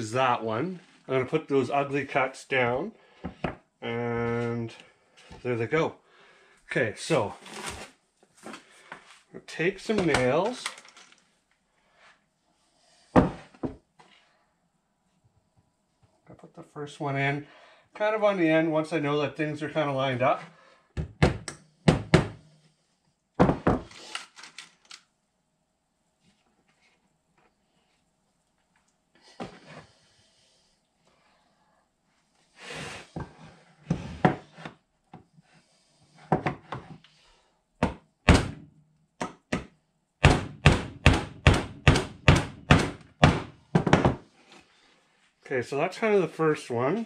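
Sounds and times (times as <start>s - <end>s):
hammer driving nail into wood: 39.2s - 43.5s.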